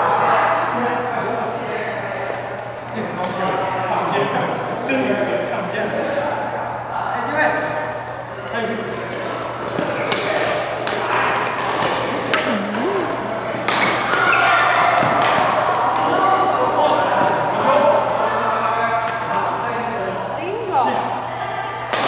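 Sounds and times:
racket hitting shuttlecock: 9.6s - 16.1s.

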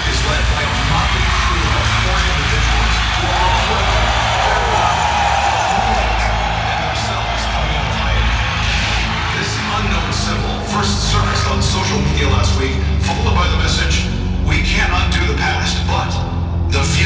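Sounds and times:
waiting crowd noise: 0.0s - 14.7s
muffled broadcast voices: 0.0s - 17.0s.

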